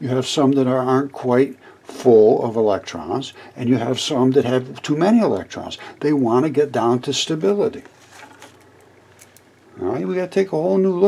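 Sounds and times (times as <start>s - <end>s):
man speaking: 0.0s - 7.9s, 9.8s - 11.0s.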